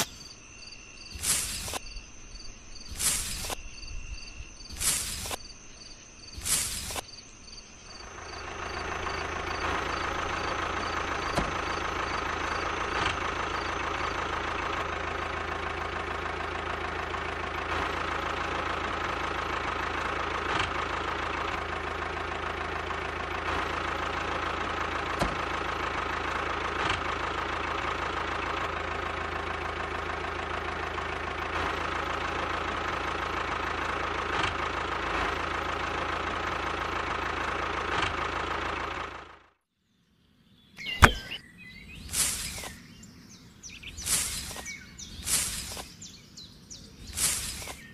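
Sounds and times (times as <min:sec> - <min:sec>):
toy tractor engine running: 0:43.9 - 0:46.2, 0:47.0 - 0:47.9.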